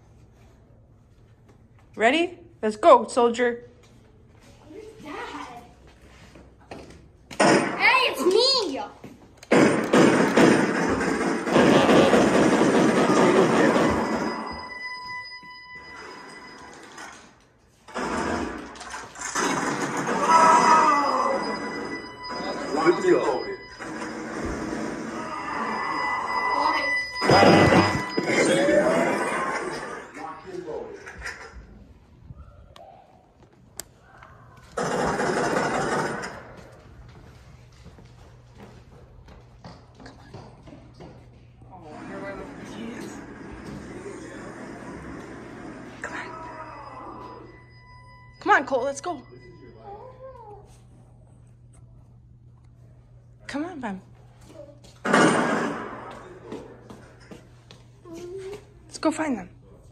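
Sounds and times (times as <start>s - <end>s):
loud bursts of noise: 9.5s - 14.5s, 17.9s - 21.8s, 23.8s - 25.8s, 34.8s - 36.5s
high electronic tones: 11.5s - 17.2s, 20.6s - 30.0s.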